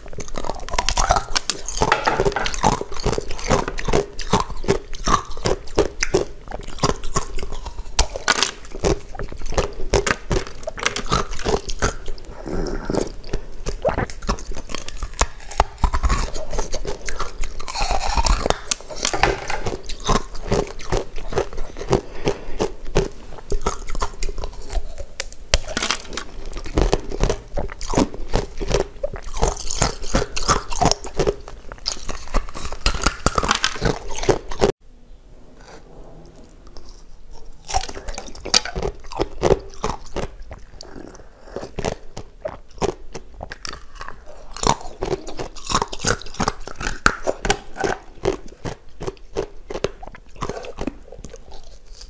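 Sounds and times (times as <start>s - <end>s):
chewing ice crunches: 0.0s - 34.7s, 37.4s - 52.0s.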